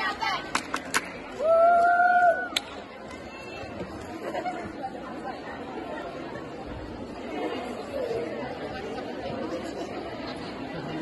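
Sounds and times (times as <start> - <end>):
echoing chatter of voices: 0.0 - 11.0.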